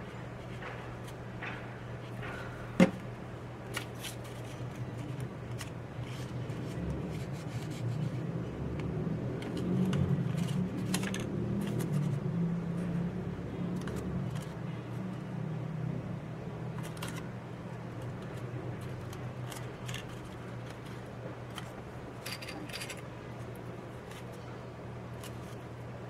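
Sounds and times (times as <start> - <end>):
steady low hum: 0.0 - 26.0.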